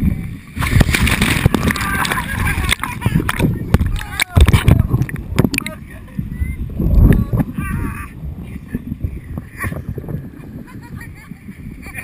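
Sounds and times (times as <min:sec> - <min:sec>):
rumble on microphone: 0:00.0 - 0:12.0
river water splashing: 0:00.6 - 0:05.8.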